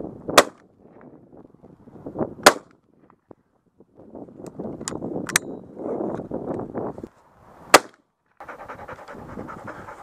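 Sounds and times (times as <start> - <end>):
wind rumble on microphone: 0.0 - 7.8, 8.4 - 10.0
shotgun shot: 0.4 - 0.6, 2.4 - 2.7, 7.7 - 8.0.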